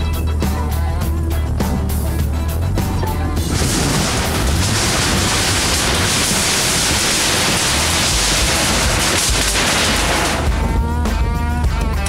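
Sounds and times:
sheet metal crunching under buggy: 0:03.4 - 0:12.0.

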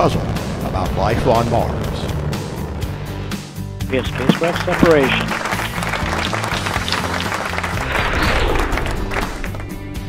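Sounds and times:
background music with low bass notes: 0:00.0 - 0:10.0.

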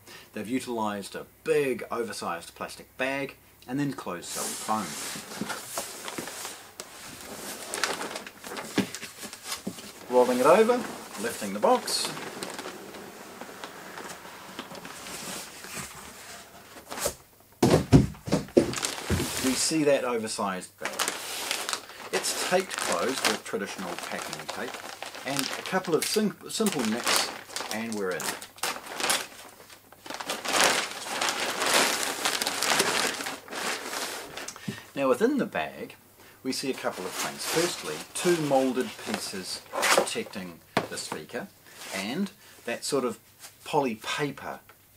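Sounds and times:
cardboard rubbing on plastic: 0:04.3 - 0:17.2, 0:18.3 - 0:19.7, 0:26.6 - 0:34.5
plastic bag crinkling: 0:04.3 - 0:34.9, 0:36.6 - 0:42.1.

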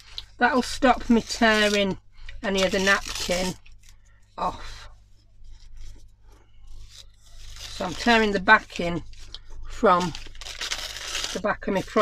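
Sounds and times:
tissue paper tearing: 0:00.0 - 0:06.1, 0:06.7 - 0:12.0.

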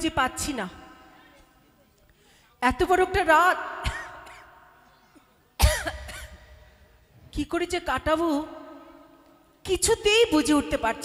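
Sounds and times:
cough over a microphone: 0:03.8 - 0:06.6.

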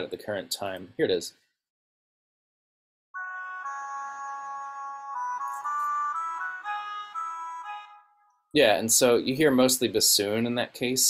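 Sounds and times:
soprano saxophone and bassoon melody: 0:03.2 - 0:08.2.

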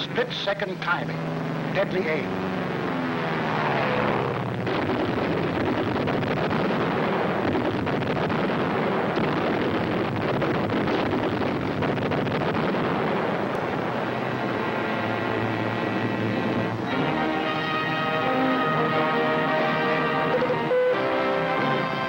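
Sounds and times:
propeller engines droning: 0:00.0 - 0:22.0.

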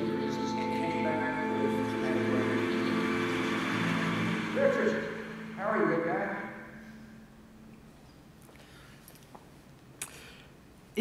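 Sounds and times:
sustained background music: 0:00.0 - 0:07.7.

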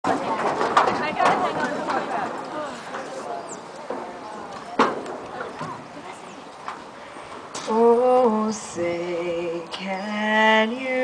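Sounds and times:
indistinct talking: 0:00.0 - 0:07.9.

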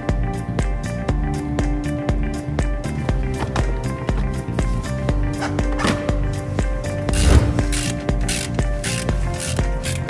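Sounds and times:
ratchet wrench clicking: 0:07.1 - 0:10.0.

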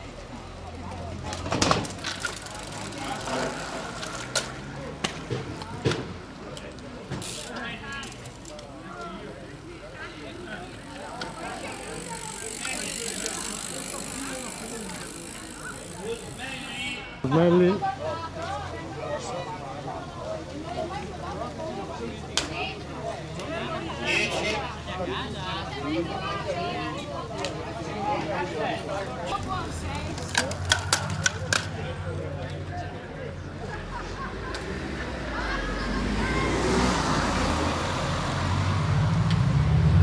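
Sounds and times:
people talking in background: 0:00.0 - 0:40.0
bicycle tyres hissing on asphalt: 0:02.3 - 0:04.3, 0:07.2 - 0:08.0, 0:09.6 - 0:16.9.

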